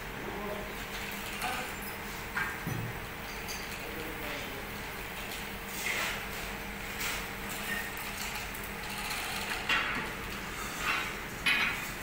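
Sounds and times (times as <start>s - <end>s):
low workshop hum: 0.0s - 12.0s.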